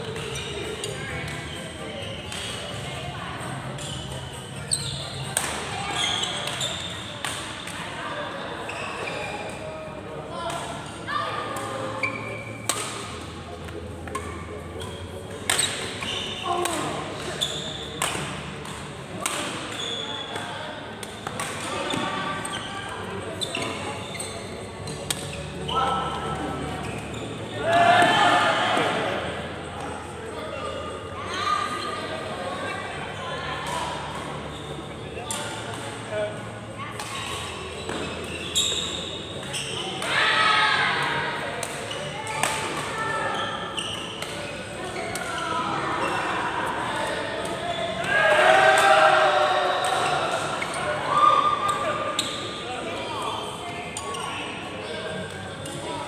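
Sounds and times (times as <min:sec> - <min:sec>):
indistinct chatter and calls: 0:00.0 - 0:12.7, 0:21.6 - 0:56.0
rackets striking shuttlecock: 0:12.6 - 0:14.4, 0:16.6 - 0:19.8.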